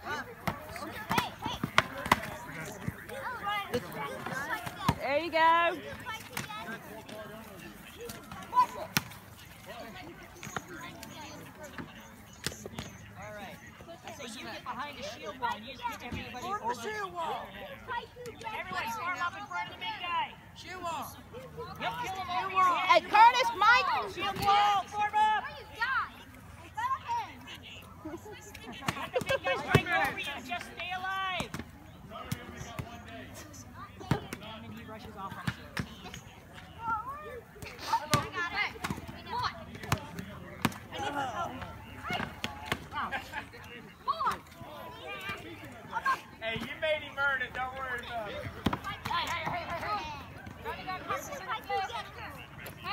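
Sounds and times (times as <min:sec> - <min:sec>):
children shouting and chattering: 0:00.0 - 0:52.9.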